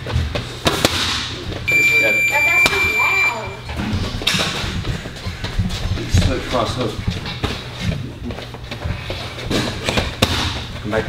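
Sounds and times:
boxing gloves striking mitts: 0.0s - 1.4s, 9.5s - 10.6s.

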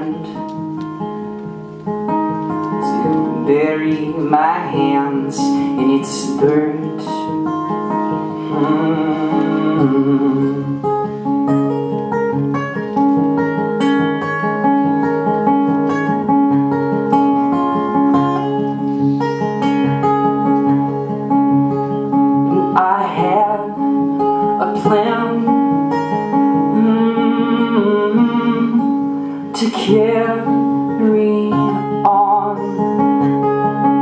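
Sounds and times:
acoustic guitar picking: 0.0s - 34.0s.

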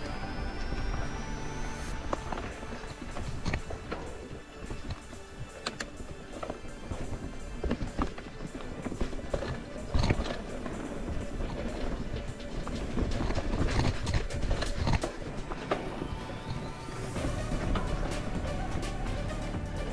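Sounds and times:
music: 0.0s - 19.9s
mountain bike rattling and knocking: 2.2s - 15.9s.

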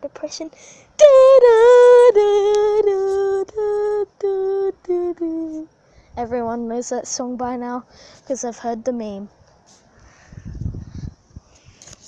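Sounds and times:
girl singing wordless tune: 0.0s - 9.4s.

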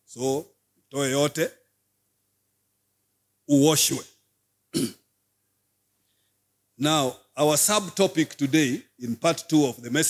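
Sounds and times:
man clearing throat: 4.7s - 5.1s.

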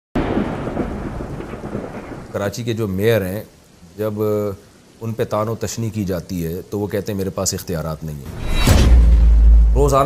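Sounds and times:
thunder-like rumble: 0.2s - 2.4s.

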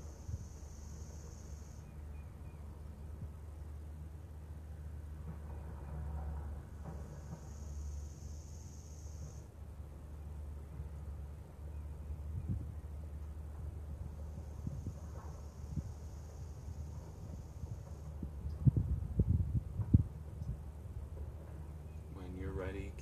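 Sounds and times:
deep hissing breaths: 0.0s - 1.9s, 6.9s - 9.5s, 14.4s - 18.2s
low outdoor rumble: 0.0s - 23.0s.

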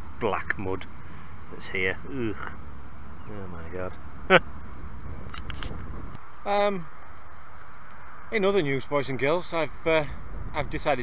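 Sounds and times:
wind rumble on microphone: 2.5s - 6.3s, 8.2s - 11.0s.

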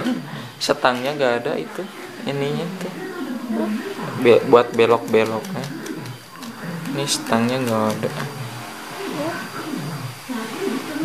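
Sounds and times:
steady low hum: 0.0s - 11.0s
child's faint wordless voice: 3.5s - 3.8s, 9.1s - 9.5s.

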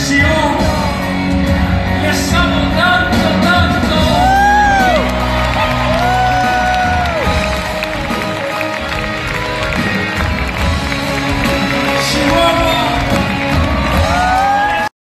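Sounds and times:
person singing: 0.0s - 5.2s, 11.7s - 14.9s
live rock ballad: 0.0s - 14.9s
crowd cheering: 3.0s - 14.9s.

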